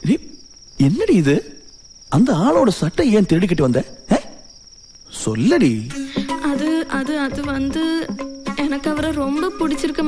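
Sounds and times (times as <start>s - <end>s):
cricket trilling: 0.0s - 10.0s
man's voice: 5.1s - 6.3s.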